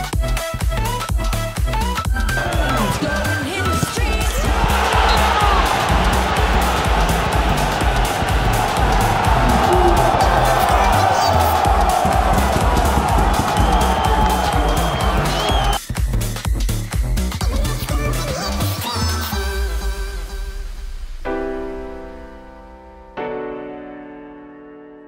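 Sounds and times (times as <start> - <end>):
electronic dance music: 1.5 - 19.9
stadium crowd cheering: 2.2 - 15.8.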